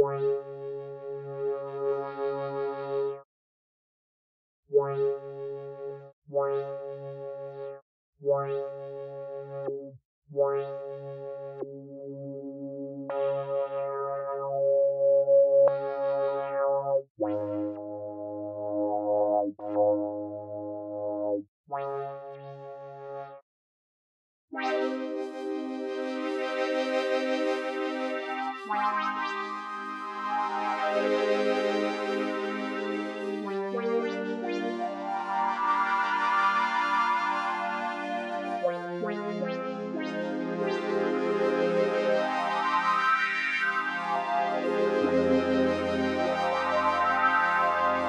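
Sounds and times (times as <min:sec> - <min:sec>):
synthesizer playing held chords: 0:11.4 - 0:21.3, 0:24.7 - 0:38.6, 0:39.6 - 0:48.0.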